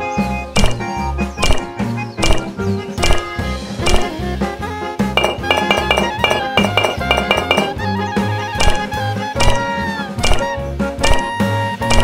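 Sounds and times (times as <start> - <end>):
background music with beat and bass: 0.0 - 12.0
plucked melody notes: 0.6 - 12.0.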